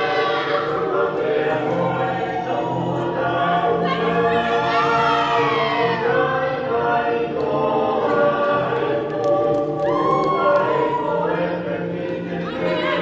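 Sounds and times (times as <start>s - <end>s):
group singing in harmony: 0.0s - 13.0s.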